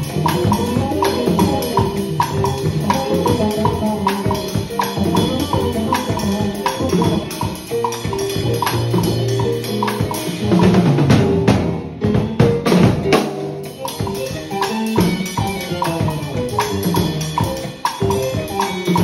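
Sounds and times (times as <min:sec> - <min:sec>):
backing track notes: 0:00.0 - 0:19.0
drum kit playing latin groove: 0:00.0 - 0:19.0.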